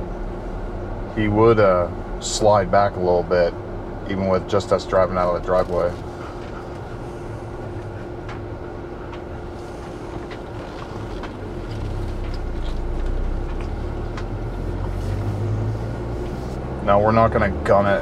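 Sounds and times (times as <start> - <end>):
car engine and road rumble: 0.0 - 18.0.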